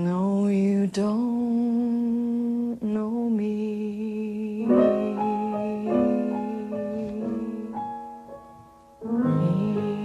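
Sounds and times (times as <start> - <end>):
woman singing long held notes: 0.0 - 8.1, 9.0 - 10.0
piano chord: 4.6 - 10.0.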